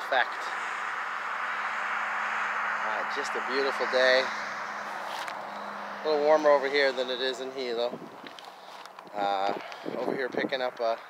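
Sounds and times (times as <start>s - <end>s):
outdoor rushing noise: 0.0s - 11.0s.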